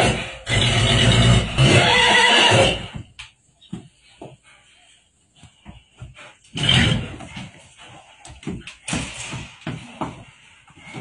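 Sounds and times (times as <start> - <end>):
horse neighing: 0.0 - 3.0.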